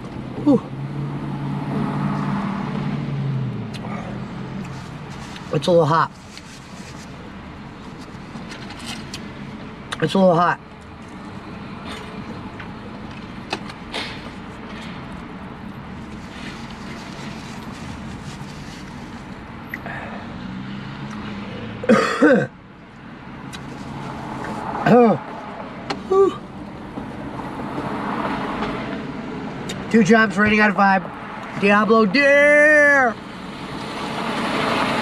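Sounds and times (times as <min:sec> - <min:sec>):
man coughing and clearing throat: 0:21.8 - 0:22.5.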